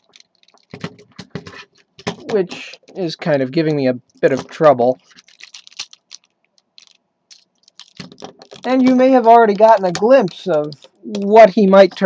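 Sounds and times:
plastic toy parts clicking and creaking: 0.0 - 3.1, 4.0 - 12.0.

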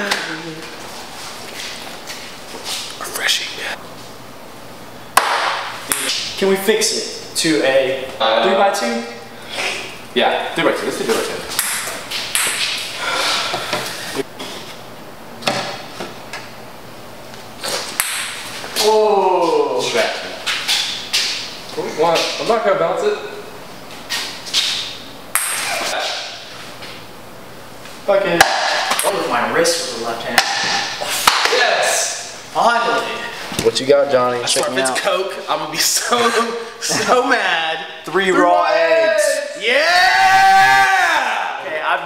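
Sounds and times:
breathy hisses: 12.9 - 14.2.

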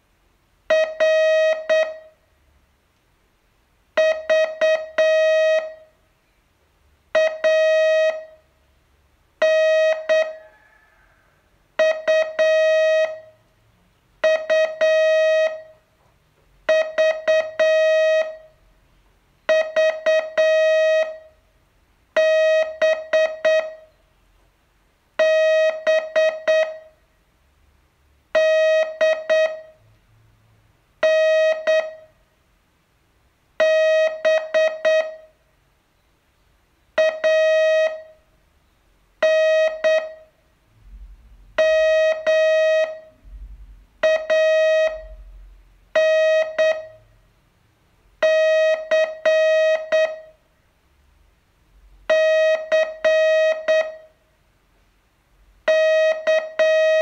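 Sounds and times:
morse code beeps: 0.7 - 2.1, 4.0 - 5.8, 7.2 - 8.4, 9.4 - 10.4, 11.8 - 13.4, 14.2 - 15.7, 16.7 - 18.5, 19.5 - 21.3, 22.2 - 23.9, 25.2 - 26.9, 28.4 - 29.7, 31.0 - 32.1, 33.6 - 35.3, 37.0 - 38.2, 39.2 - 40.3, 41.6 - 43.2, 44.0 - 45.3, 46.0 - 47.0, 48.2 - 50.3, 52.1 - 54.1, 55.7 - 57.0.

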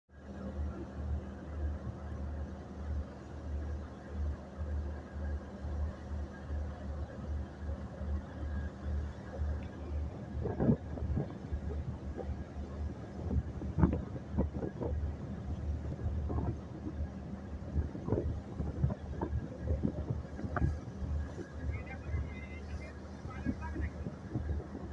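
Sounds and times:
boat engine droning: 0.2 - 24.9
wind buffeting microphone: 9.0 - 24.9.

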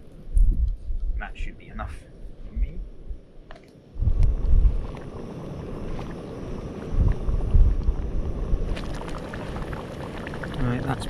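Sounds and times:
wind rumbling on microphone: 0.0 - 11.0
pot simmering on camping stove: 3.9 - 11.0.

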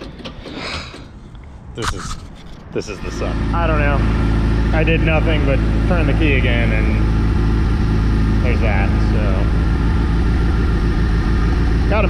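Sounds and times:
engine idling unevenly: 2.8 - 12.0.

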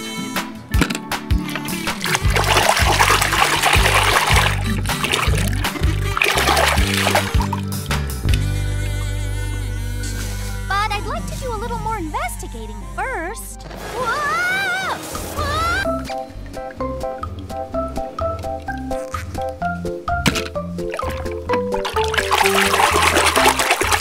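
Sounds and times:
background music: 0.0 - 24.0
water splashing and sloshing: 0.8 - 8.5, 14.9 - 24.0.

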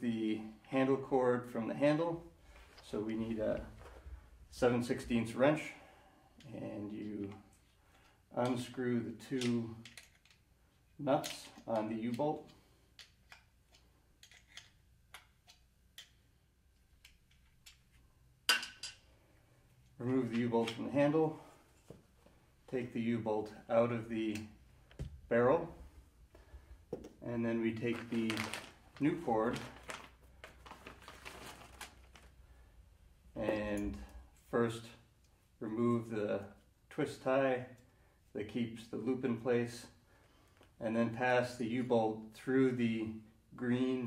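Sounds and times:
plastic bag crinkling: 27.8 - 32.4.

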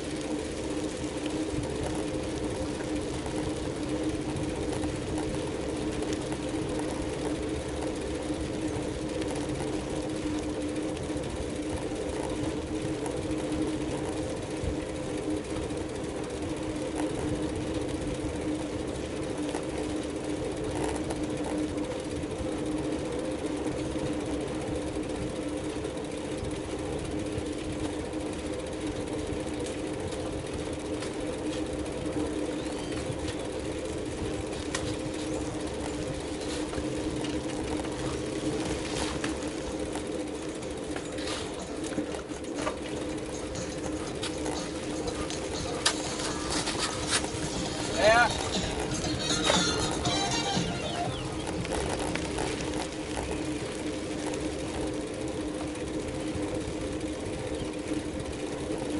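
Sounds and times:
bicycle tyres on asphalt: 0.0 - 58.9
steady hum: 0.0 - 58.9.

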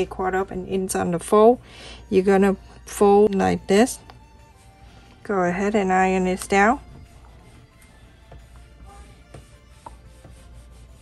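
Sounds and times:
faint background music: 0.0 - 11.0
iron tapping and rubbing on fabric: 6.1 - 11.0.

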